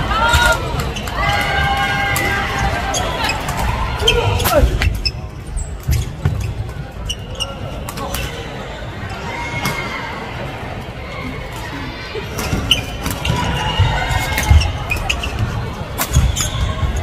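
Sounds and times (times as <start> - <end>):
voices: 0.0 - 17.0
sneakers squeaking on wooden floor: 2.8 - 7.9, 12.4 - 17.0.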